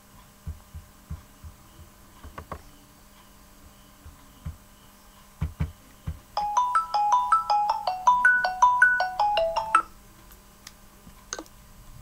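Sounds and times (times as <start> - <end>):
dull thumps: 5.4 - 6.3
phone ringtone melody: 6.4 - 9.9.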